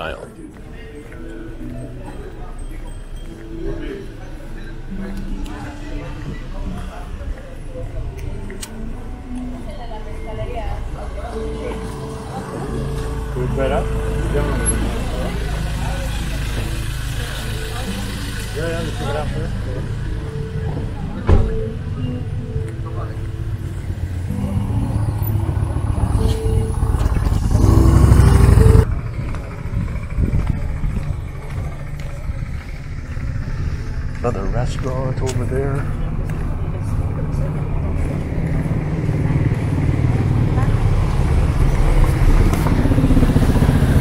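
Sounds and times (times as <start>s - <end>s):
people's voices: 0.0s - 44.0s
vehicle engine idling: 0.0s - 44.0s.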